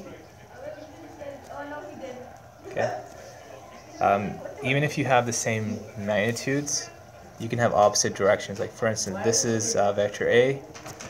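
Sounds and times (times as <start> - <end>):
faint background voice: 0.0 - 11.0.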